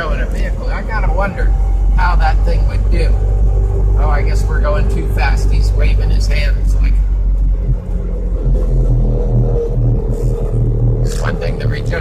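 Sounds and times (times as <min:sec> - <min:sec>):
road and drivetrain rumble: 0:00.0 - 0:12.0.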